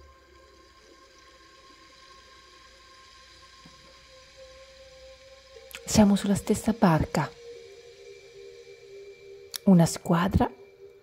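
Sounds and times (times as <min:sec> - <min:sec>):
soft ambient music: 0:00.0 - 0:11.0.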